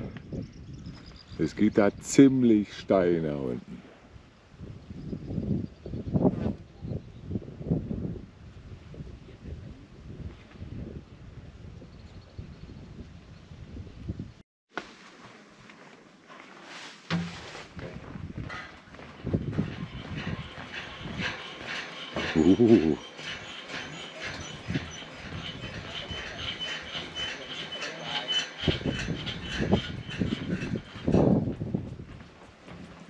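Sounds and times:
indistinct background voices: 20.1s - 29.0s.

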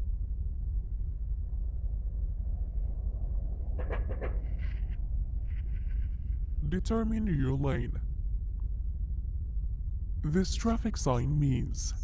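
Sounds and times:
steady low rumble: 0.0s - 12.0s.

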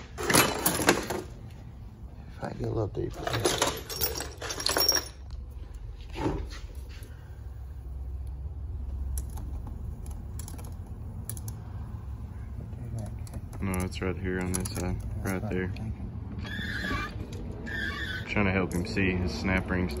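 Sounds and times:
metal parts clinking and rattling: 0.1s - 1.3s, 3.1s - 5.5s, 9.2s - 11.6s, 13.1s - 15.4s.

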